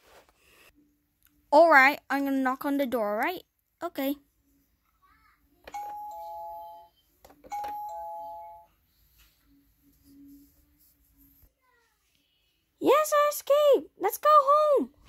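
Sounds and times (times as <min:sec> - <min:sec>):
toy doorbell button click: 0:05.7 - 0:06.3.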